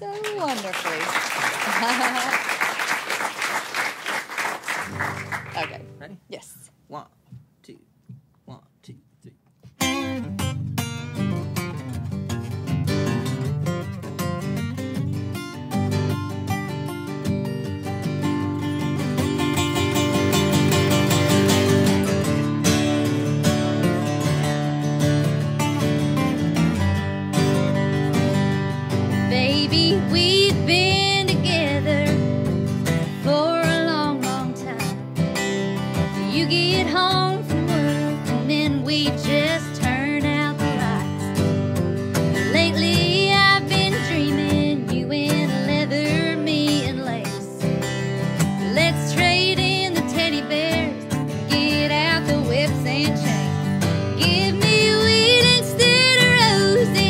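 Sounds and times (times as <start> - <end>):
acoustic guitars playing country: 0.0 - 7.0, 9.5 - 57.0
woman singing: 29.2 - 32.4, 33.0 - 35.1, 36.1 - 41.3, 42.4 - 47.7, 48.4 - 57.0.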